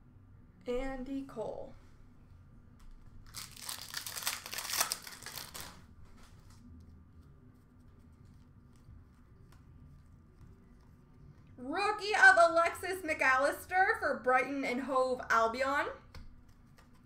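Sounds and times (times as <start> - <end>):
plastic packaging crinkling: 3.1 - 6.7
cards clicking: 16.1 - 17.0.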